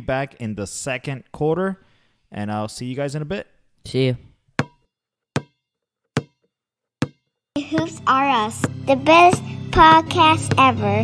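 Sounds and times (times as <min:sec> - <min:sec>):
sharp ringing knocks: 0:04.6 - 0:06.4.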